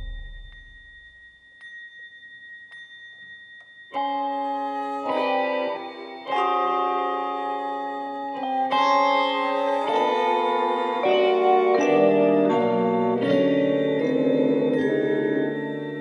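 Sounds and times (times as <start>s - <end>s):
percussion: 0.0s - 16.0s
keyboard: 3.9s - 16.0s
electric guitar: 4.0s - 16.0s
electronic wind instruments: 4.0s - 16.0s.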